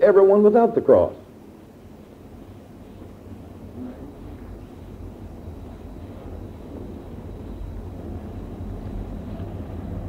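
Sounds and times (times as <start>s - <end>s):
cassette tape hiss: 0.0s - 10.0s
low hum: 1.6s - 10.0s.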